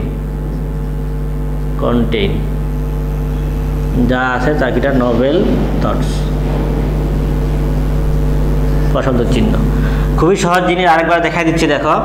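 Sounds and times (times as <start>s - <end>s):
low hum: 0.0s - 11.4s.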